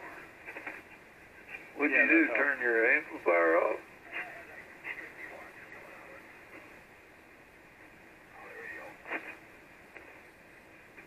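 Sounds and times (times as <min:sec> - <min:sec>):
faint garbled radio voice: 0:00.0 - 0:06.8, 0:08.2 - 0:09.5
radio crackle: 0:00.0 - 0:06.9, 0:07.8 - 0:11.0
radio receiver hiss: 0:00.0 - 0:11.0.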